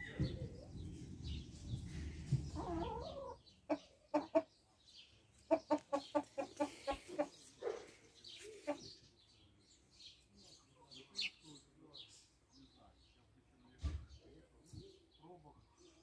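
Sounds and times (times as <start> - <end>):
chickens clucking: 0.0 - 9.1.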